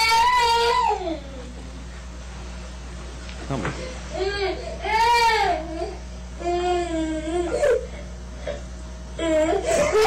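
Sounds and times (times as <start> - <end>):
toddler crying and whining: 0.0 - 1.6, 4.1 - 8.6, 9.2 - 10.0.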